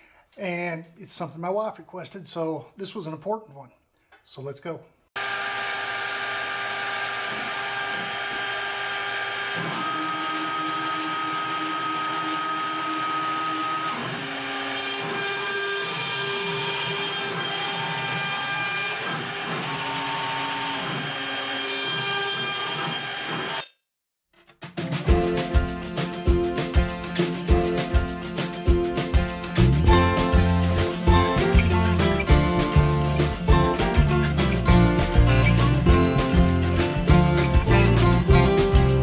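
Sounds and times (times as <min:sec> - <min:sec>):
cnc router spindle whining: 0:05.2 - 0:23.6.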